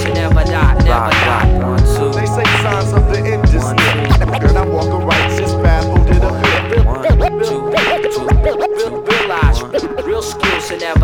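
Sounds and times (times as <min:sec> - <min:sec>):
hip hop drum beat: 0:00.0 - 0:11.0
turntable scratching: 0:00.0 - 0:11.0.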